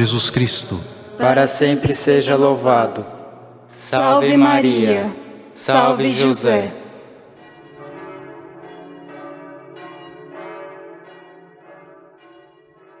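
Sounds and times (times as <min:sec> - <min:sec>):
bells ringing: 0:00.6 - 0:13.0.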